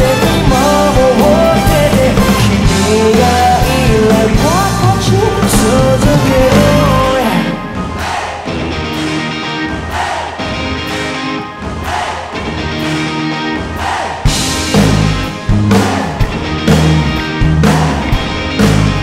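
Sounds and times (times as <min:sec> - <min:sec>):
live band instrumental music: 0:00.0 - 0:19.0.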